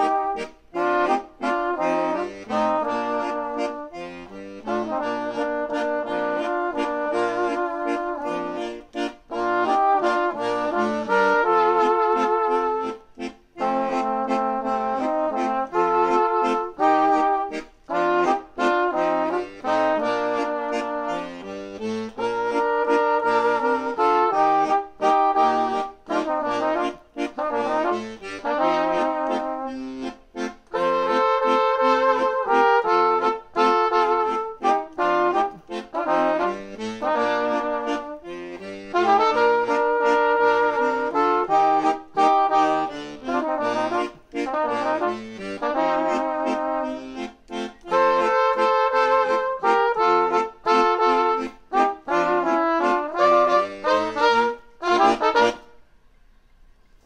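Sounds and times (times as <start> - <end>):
brass horns playing waltz: 0.0 - 55.8
piano accordion: 0.0 - 55.8.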